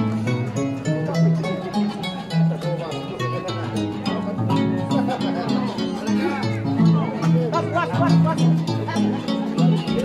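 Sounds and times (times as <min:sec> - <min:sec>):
live band led by harp: 0:00.0 - 0:10.0.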